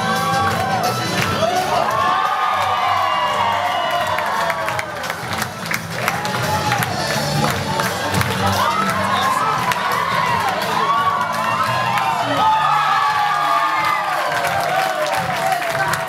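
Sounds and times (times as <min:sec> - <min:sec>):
crowd cheering and shouting: 0:00.0 - 0:16.0
music: 0:00.0 - 0:16.0.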